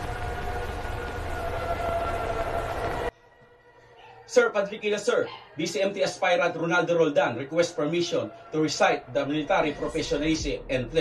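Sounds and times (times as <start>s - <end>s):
low rumble: 0.0s - 3.1s
air raid siren wail: 0.0s - 3.6s.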